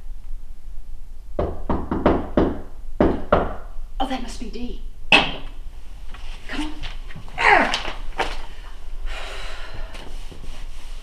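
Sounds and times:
knocking on a door: 1.4 - 3.6.

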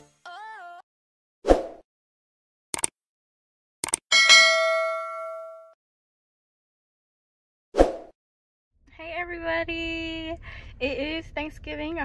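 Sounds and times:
bright bell ding: 4.1 - 5.8.

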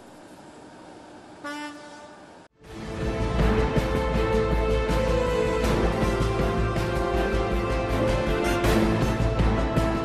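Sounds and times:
ship's horn blast: 1.4 - 2.5.

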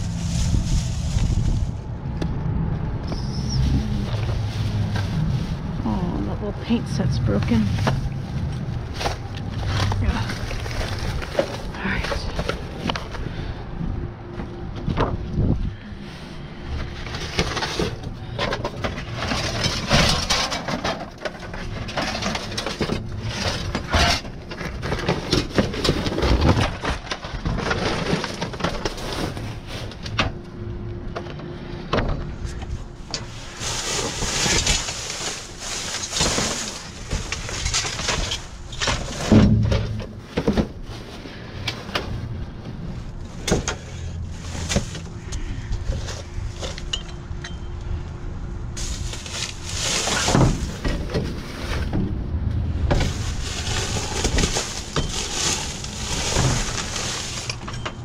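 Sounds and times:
paper and plastic bags rustling: 0.0 - 2.1, 3.2 - 13.6, 15.7 - 30.3, 32.3 - 47.0, 48.8 - 58.0
knocks and clatters of items: 7.4 - 13.3, 16.8 - 30.4, 31.1 - 42.3, 43.3 - 47.6, 48.8 - 52.2, 52.8 - 58.0.

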